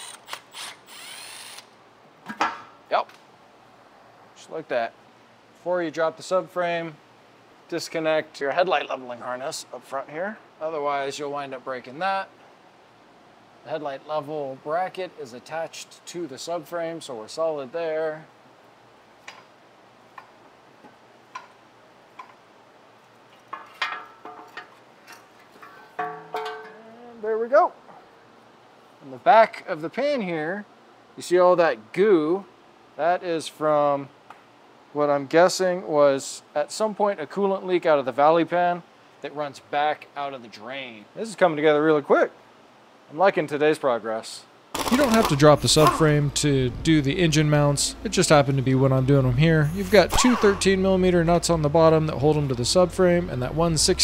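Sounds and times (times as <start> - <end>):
electric ratchet running: 0.0 - 1.7.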